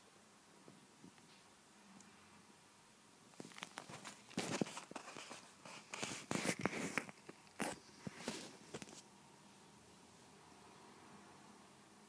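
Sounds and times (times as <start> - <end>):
fabric rustling and scratching: 3.3 - 9.1.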